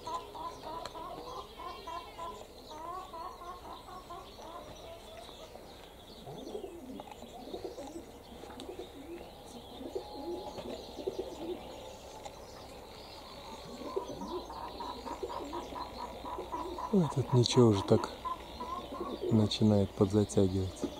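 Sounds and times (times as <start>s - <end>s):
pigeons cooing: 0.0s - 20.9s.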